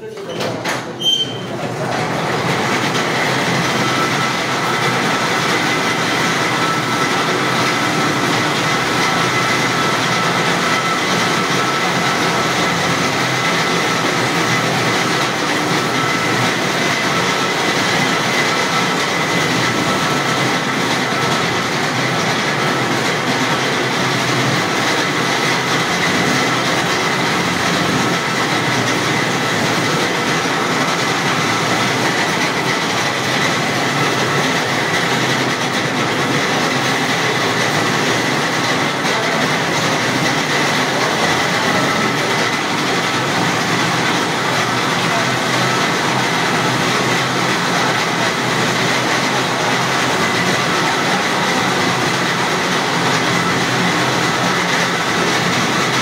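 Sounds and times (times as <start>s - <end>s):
truck machinery running loudly: 0.0s - 56.0s.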